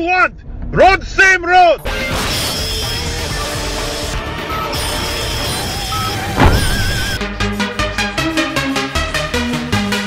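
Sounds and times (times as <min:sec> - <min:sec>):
wavering high electronic tones: 0:05.9 - 0:07.2
cartoon explosion rumbling crash: 0:06.4 - 0:07.2
explosion blast: 0:06.4 - 0:07.2.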